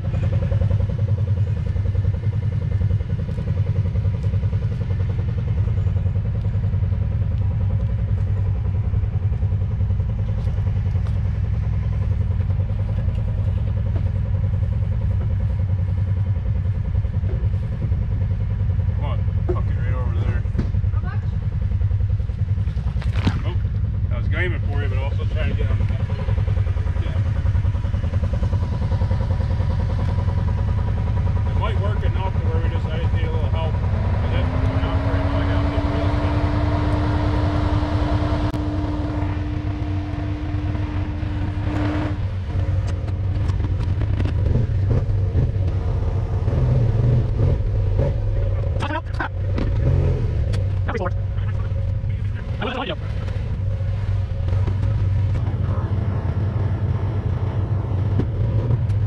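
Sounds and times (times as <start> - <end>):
engine idling: 0.0 - 59.0.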